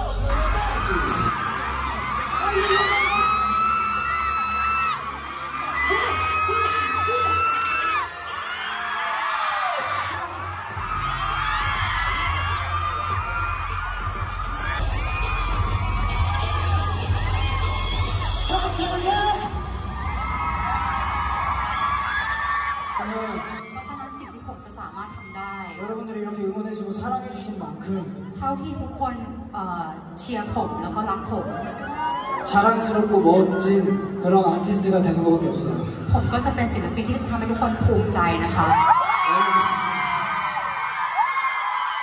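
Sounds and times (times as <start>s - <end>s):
live pop music with pulsing bass: 0.0s - 8.2s, 10.1s - 22.0s
crowd screaming and cheering: 0.0s - 28.9s, 30.0s - 42.0s.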